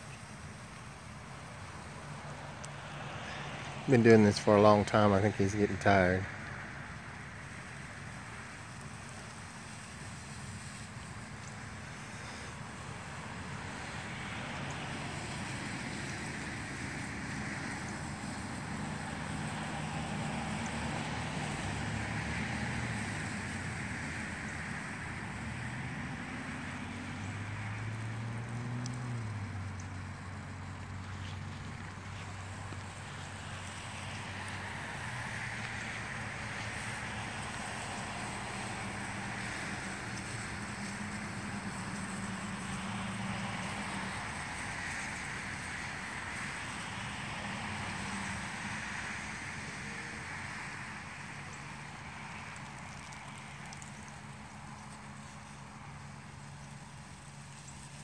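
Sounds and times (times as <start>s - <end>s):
lawn sprinkler hissing: 0.0s - 58.0s.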